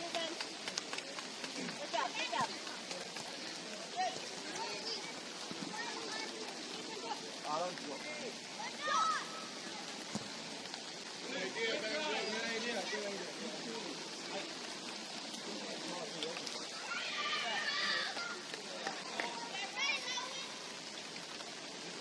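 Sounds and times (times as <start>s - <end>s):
rain falling: 0.0s - 22.0s
loud shout: 8.6s - 9.4s, 16.8s - 18.4s
people calling out: 16.7s - 18.5s.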